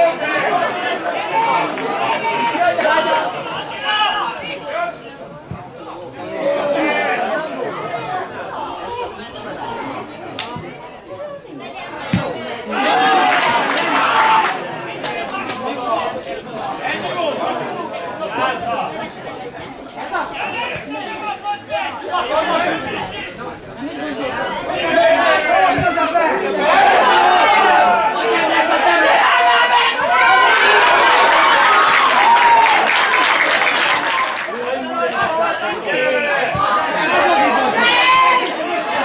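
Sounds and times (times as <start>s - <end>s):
voices talking and calling out: 0.0s - 39.0s
people shouting: 12.4s - 14.5s, 24.3s - 39.0s.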